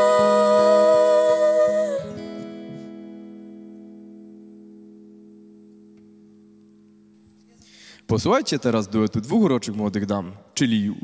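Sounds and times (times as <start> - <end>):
woman singing a long note: 0.0 - 2.3.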